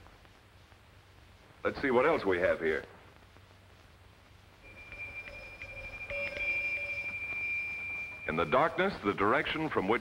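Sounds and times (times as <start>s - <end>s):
hand bell ringing: 4.7s - 8.7s.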